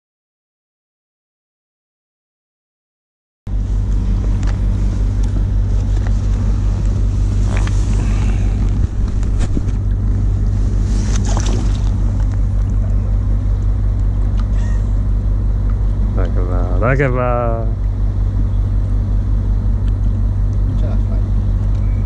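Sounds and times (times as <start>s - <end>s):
ferry engines droning: 3.5s - 22.0s
water splashes: 11.0s - 12.3s.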